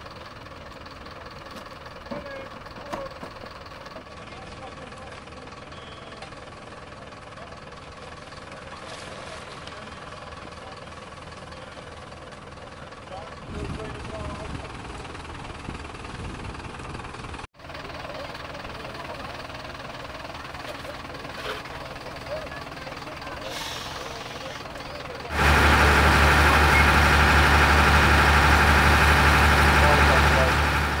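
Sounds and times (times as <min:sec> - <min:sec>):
diesel engine running: 0:00.0 - 0:31.0
distant voices: 0:17.6 - 0:31.0.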